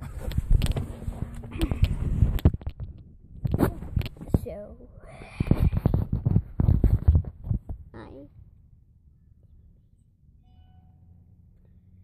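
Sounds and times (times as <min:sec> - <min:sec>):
knocks and rustling: 0:00.0 - 0:04.6, 0:05.6 - 0:07.9
voice: 0:03.5 - 0:05.8, 0:07.9 - 0:08.3.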